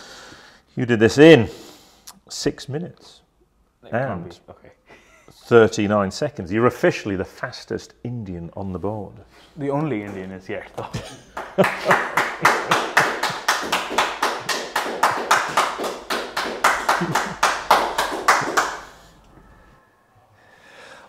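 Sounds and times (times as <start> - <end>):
hands clapping: 11.2 - 19.0
person laughing: 16.8 - 17.7.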